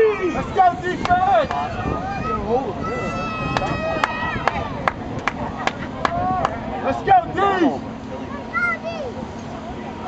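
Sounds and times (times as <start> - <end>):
voices: 0.0 - 10.0
hand claps: 3.5 - 6.6.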